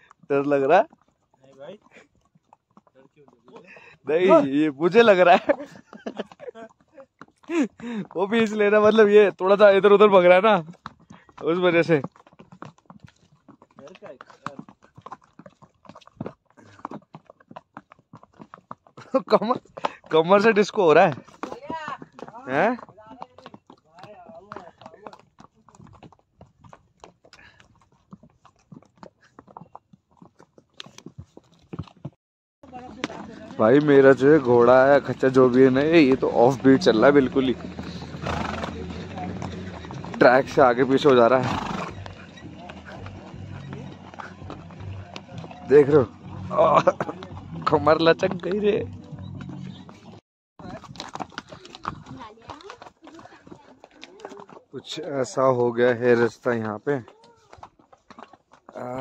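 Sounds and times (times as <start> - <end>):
horse hooves on stony trail: 0.0 - 59.0.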